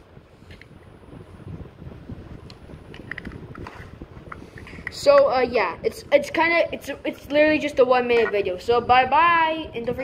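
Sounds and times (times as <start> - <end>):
microphone handling rumble: 0.0 - 10.0.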